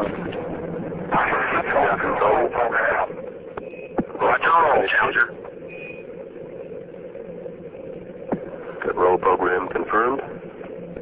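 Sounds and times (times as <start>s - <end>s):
radio static hiss and hum: 0.0s - 11.0s
man's voice over radio: 1.1s - 3.2s, 4.2s - 5.4s, 8.8s - 10.2s.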